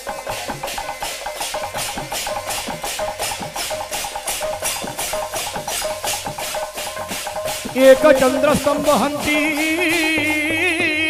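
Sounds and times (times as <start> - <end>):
barrel drum rhythm: 0.0 - 11.0
brass hand cymbals: 0.0 - 11.0
melodic line of held notes: 1.6 - 11.0.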